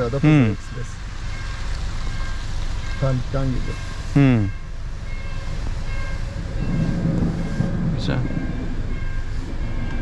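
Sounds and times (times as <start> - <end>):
train rumbling past: 1.0 - 10.0.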